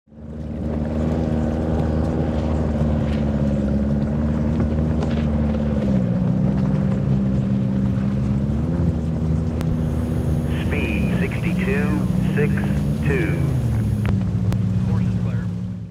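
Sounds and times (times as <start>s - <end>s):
watercraft engine at high speed: 0.2s - 15.9s
person speaking: 9.8s - 14.0s.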